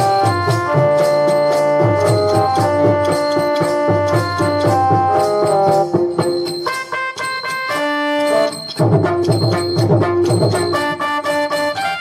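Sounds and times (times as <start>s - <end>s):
hand-drum beats: 0.0s - 12.0s
melody instrument holding notes: 0.0s - 12.0s.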